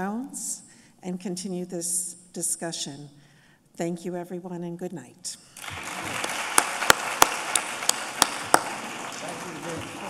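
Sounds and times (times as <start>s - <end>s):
audience applauding: 5.6s - 10.0s
loud sharp claps: 5.6s - 10.0s.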